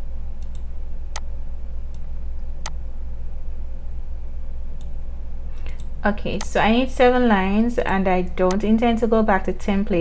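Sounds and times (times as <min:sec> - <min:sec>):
low electrical hum: 0:00.0 - 0:10.0
computer mouse clicks: 0:00.4 - 0:01.3, 0:05.6 - 0:06.6.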